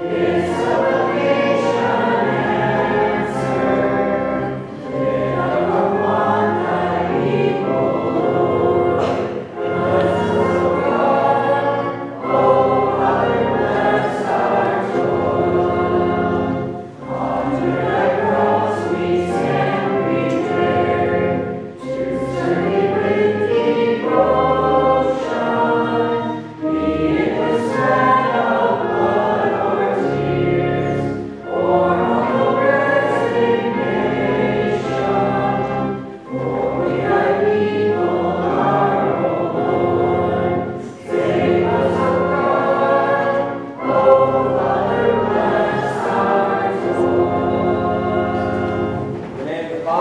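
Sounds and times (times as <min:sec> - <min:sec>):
choir singing a hymn: 0:00.0 - 0:50.0.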